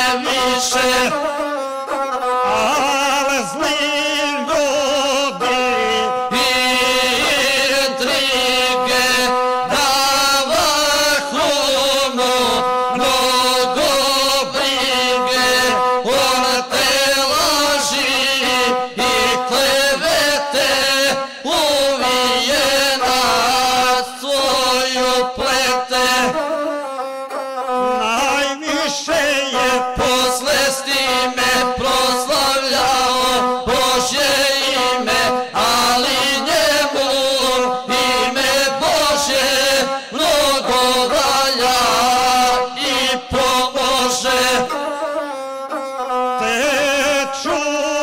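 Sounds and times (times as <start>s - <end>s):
man singing: 0.0s - 48.0s.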